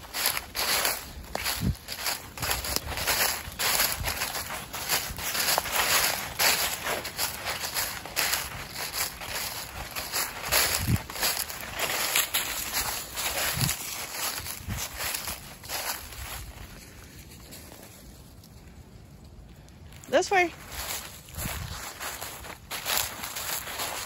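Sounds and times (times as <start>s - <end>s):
footsteps crunching through dry leaves: 0.0s - 18.6s, 19.9s - 24.0s.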